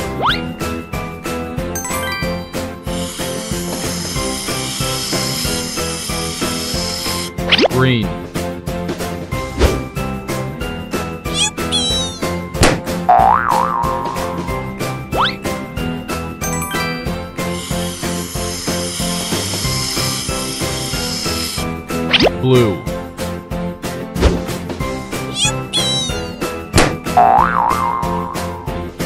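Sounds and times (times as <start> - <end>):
cheerful children's music: 0.0 - 6.1, 6.9 - 18.6, 19.4 - 29.0
cartoon boing effect: 11.4 - 12.3, 13.1 - 14.4, 25.4 - 26.4, 27.2 - 28.6
balloon popping: 25.3 - 28.1.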